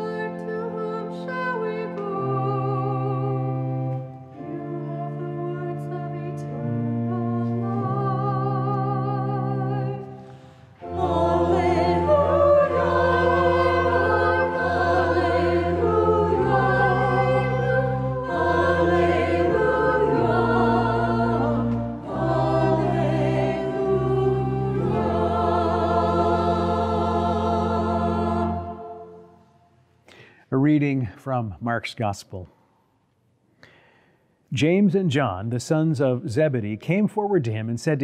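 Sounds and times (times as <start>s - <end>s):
church choir singing: 0.0s - 29.6s
breath: 10.2s - 10.8s, 30.0s - 30.5s, 32.5s - 34.4s.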